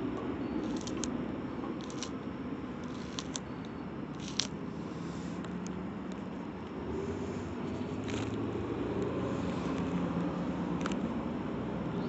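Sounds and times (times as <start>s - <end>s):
steady background noise: 0.0s - 12.0s.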